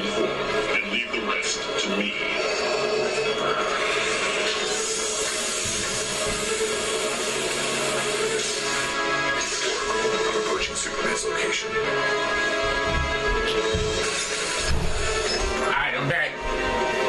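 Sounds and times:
film sound effects: 0.0 - 17.0
film music score: 8.6 - 17.0.

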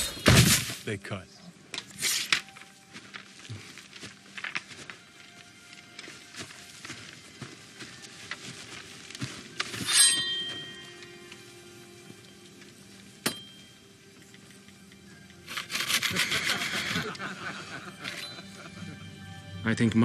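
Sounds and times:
quiet film score: 0.0 - 20.0
blade ringing: 9.7 - 11.3
person laughing: 16.1 - 19.1.

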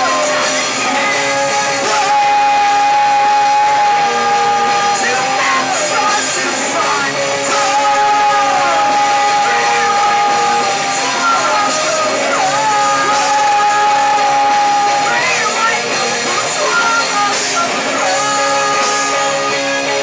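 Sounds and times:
live rock band playing: 0.0 - 20.0
singer shouting vocals: 0.0 - 20.0.

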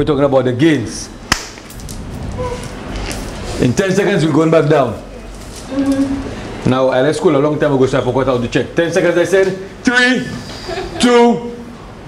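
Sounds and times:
faint room noise: 0.0 - 12.0.

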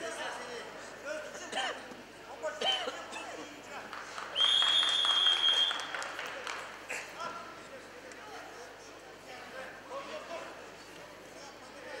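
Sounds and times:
crowd applause: 3.8 - 7.0
referee's whistle: 4.4 - 5.9.

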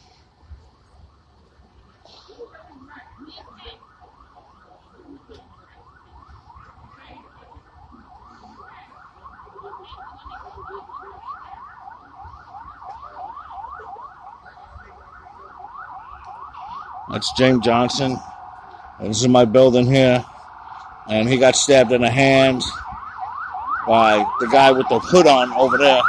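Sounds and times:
siren yelping: 2.5 - 26.0.

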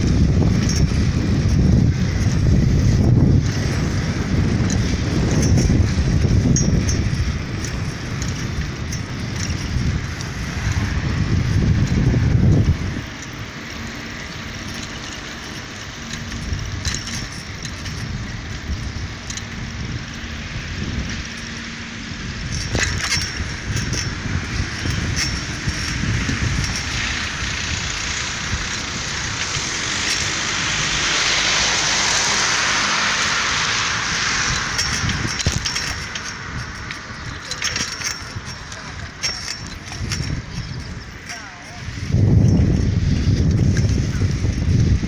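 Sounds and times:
road traffic noise: 0.0 - 45.0
wind rumble on microphone: 0.0 - 45.0.

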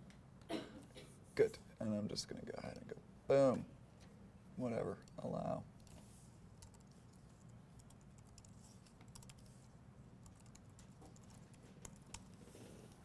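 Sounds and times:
low room hum: 0.0 - 13.0
keyboard typing clicks: 7.8 - 9.5, 10.2 - 13.0.

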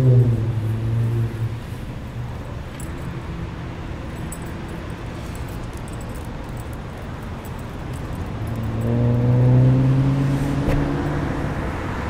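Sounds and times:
car driving past: 8.4 - 12.0.

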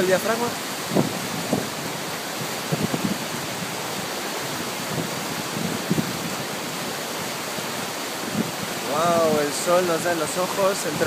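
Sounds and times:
river rapids rushing over rocks: 0.0 - 11.0.

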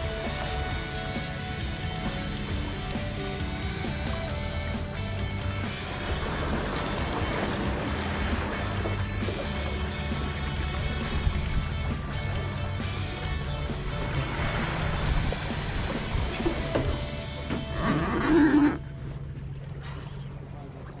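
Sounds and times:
background music with bass line: 0.0 - 18.8.

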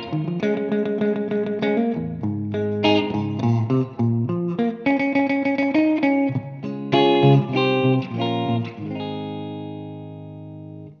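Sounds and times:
electric guitar picked notes and chords: 0.0 - 11.0.

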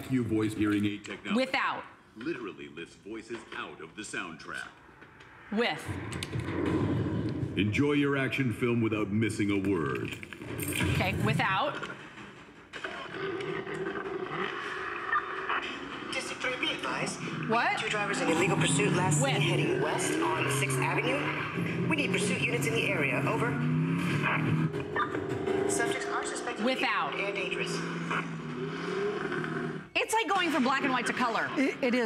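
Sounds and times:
tinny film soundtrack on tv: 0.0 - 32.0
car engine noise: 4.8 - 32.0.

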